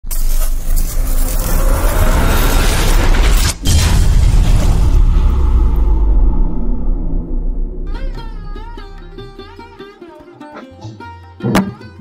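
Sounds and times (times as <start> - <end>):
loud low rumble: 1.7 - 10.0.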